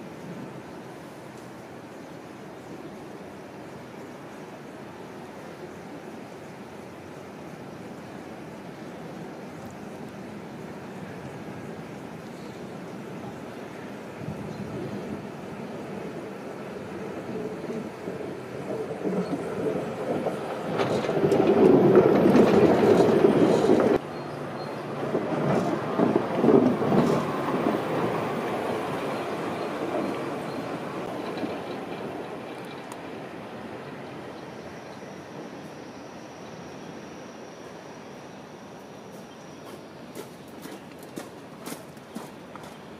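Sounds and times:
funicular wheels rolling on rails: 0:11.1 - 0:36.0.

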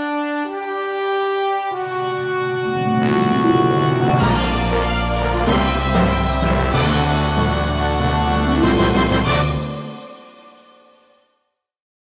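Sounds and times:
brass theme music: 0:00.0 - 0:10.8.

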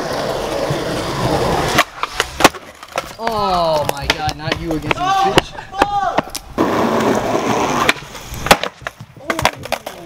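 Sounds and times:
skateboard wheels rolling on concrete: 0:00.0 - 0:10.0
skateboard tail pop: 0:07.8 - 0:10.0.

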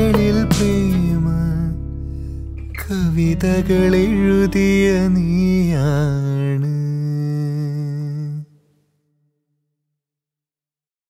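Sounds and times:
soft musical backing: 0:00.0 - 0:07.7.

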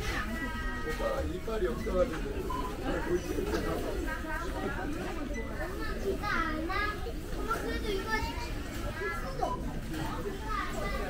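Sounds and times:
young children talking: 0:00.0 - 0:01.8, 0:02.7 - 0:11.0
chatter of shoppers: 0:00.0 - 0:11.0.

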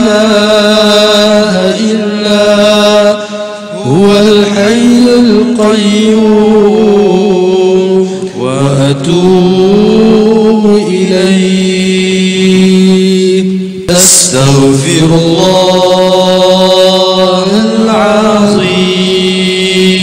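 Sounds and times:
melodic chanting: 0:00.0 - 0:20.0.

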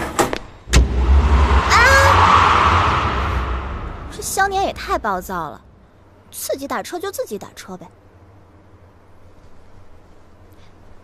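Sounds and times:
car engine revving and driving off: 0:00.7 - 0:04.7.

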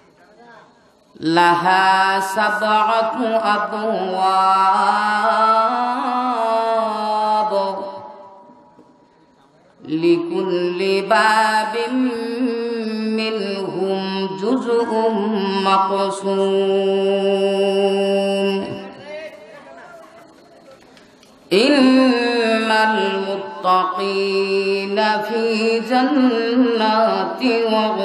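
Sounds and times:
murmuring voices in a large hall: 0:00.0 - 0:28.0
man chanting melodic recitation: 0:21.6 - 0:28.0.

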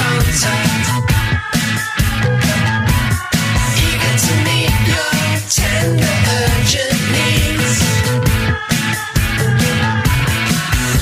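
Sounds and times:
full-band song with steady beat: 0:00.0 - 0:11.0.

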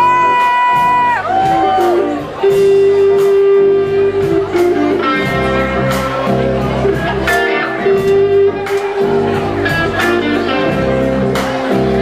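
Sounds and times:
live rock band playing: 0:00.0 - 0:12.0
regular drum beat: 0:00.0 - 0:12.0.

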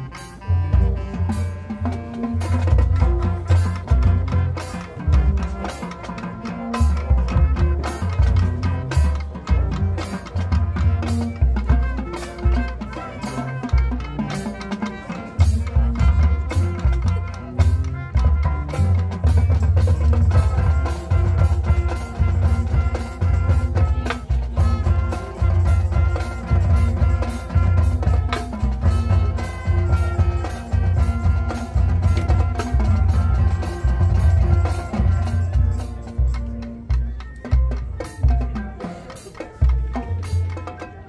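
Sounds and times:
low brass notes: 0:00.0 - 0:37.1
marching band playing: 0:00.0 - 0:41.0.

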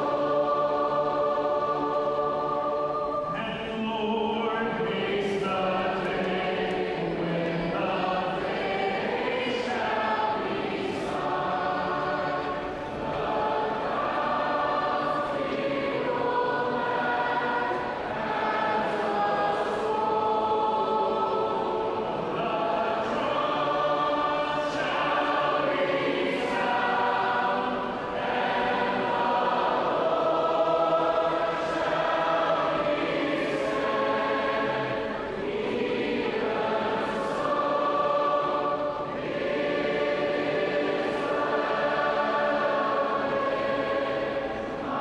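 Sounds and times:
choir singing a praise song: 0:00.0 - 0:45.0.

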